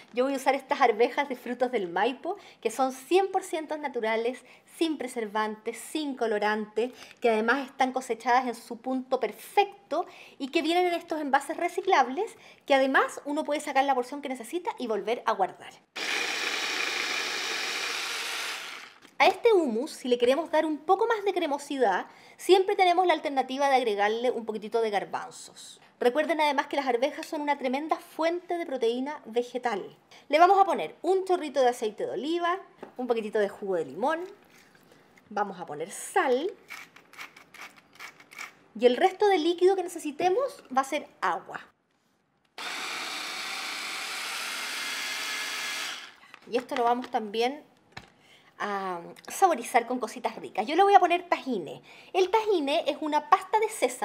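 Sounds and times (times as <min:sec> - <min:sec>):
immersion blender running: 0:16.0 - 0:19.0, 0:42.6 - 0:46.2.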